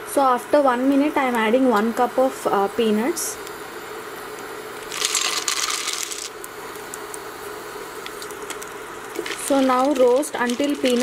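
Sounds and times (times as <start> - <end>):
peanuts clattering into metal pan: 4.9 - 6.3, 9.2 - 11.0.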